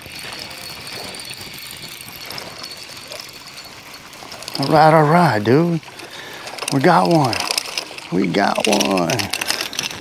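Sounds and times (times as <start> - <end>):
spinning reel cranking: 0.0 - 10.0.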